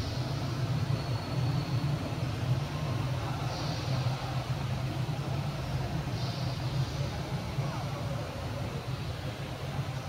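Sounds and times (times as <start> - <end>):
faint noisy hiss: 0.0 - 10.0
low mechanical drone: 0.0 - 10.0.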